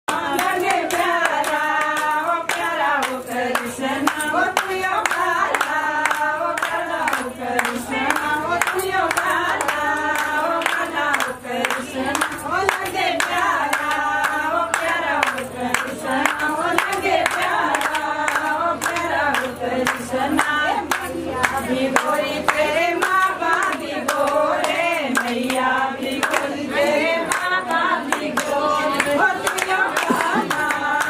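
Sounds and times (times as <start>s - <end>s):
group singing devotional song: 0.1s - 31.0s
rapid hand-clapping: 0.1s - 31.0s.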